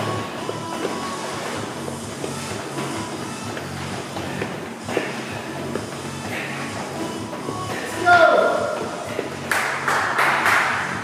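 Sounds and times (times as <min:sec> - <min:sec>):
background music with low notes: 0:00.0 - 0:11.0
battle ropes slapping the floor: 0:00.0 - 0:11.0.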